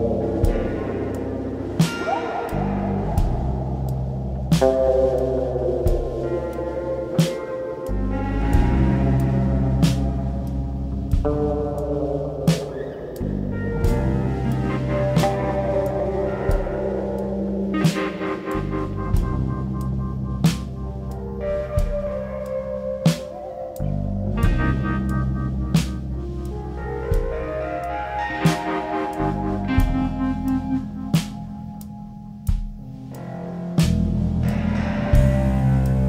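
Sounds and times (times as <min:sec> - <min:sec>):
instrumental band jam: 0:00.0 - 0:36.0.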